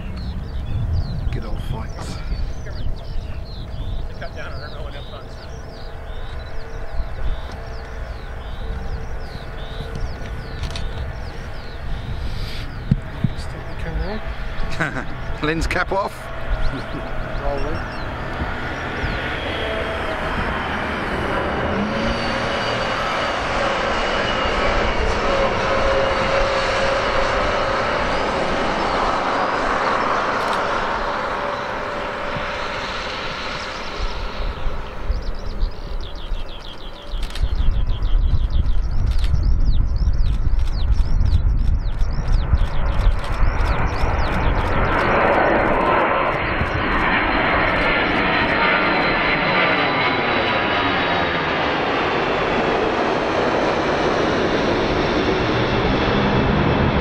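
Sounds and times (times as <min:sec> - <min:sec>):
high engine whine: 0:00.0 - 0:57.0
jet engine roar: 0:00.0 - 0:57.0.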